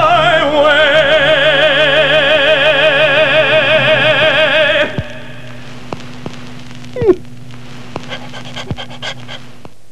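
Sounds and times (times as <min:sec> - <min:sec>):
steady low hum: 0:00.0 - 0:09.9
dog panting: 0:08.1 - 0:09.5.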